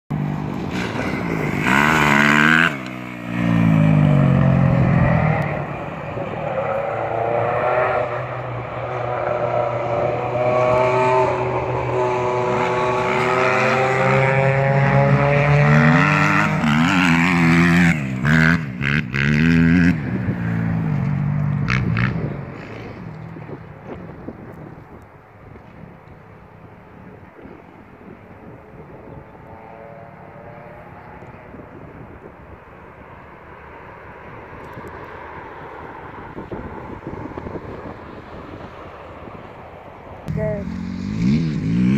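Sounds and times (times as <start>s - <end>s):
motocross bike engine revving: 0.7s - 20.6s, 40.3s - 41.9s.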